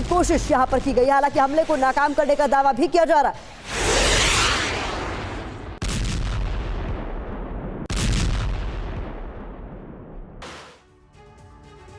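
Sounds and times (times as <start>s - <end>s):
heavy explosions in sky: 3.6s - 10.4s.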